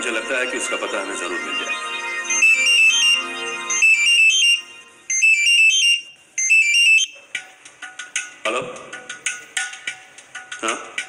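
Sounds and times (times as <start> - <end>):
warbling electronic ringtone: 0.0 - 7.2.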